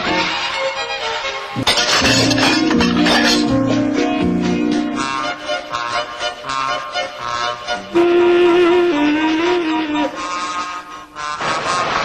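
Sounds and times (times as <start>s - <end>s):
soundtrack music with held notes: 0.0s - 11.5s.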